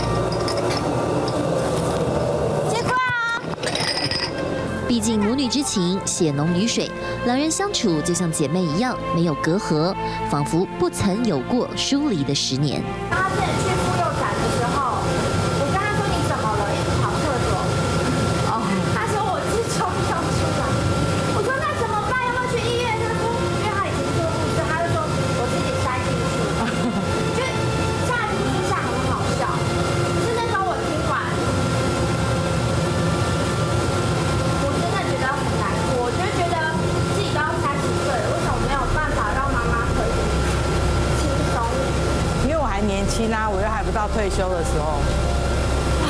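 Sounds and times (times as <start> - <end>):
exhaust fan rumbling and whining: 0.0 - 46.0
people conversing: 2.5 - 46.0.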